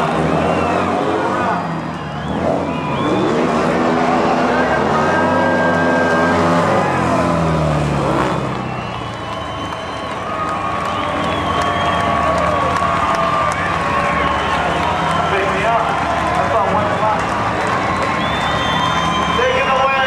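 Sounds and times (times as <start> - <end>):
racing engines revving: 0.0 - 20.0.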